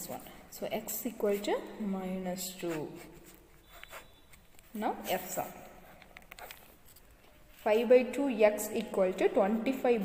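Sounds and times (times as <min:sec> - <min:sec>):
pen scratching on paper: 0:02.5 - 0:06.8.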